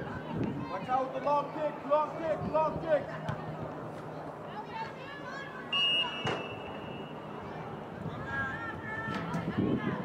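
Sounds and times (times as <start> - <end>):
referee's whistle blast: 5.7 - 7.2.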